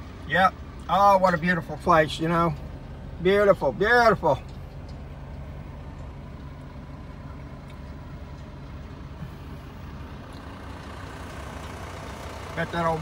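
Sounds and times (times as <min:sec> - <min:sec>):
truck engine idling: 0:00.0 - 0:13.0.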